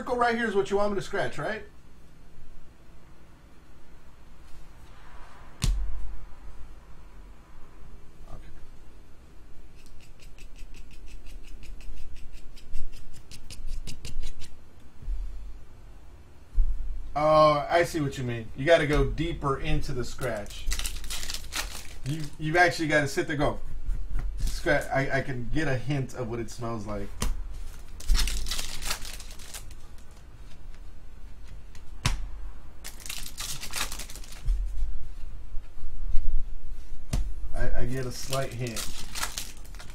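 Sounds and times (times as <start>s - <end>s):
fingernail scratching card: 9.7s - 14.6s
card pack wrapper ripping: 20.2s - 22.5s, 27.7s - 30.2s, 32.8s - 34.4s, 37.9s - 39.9s.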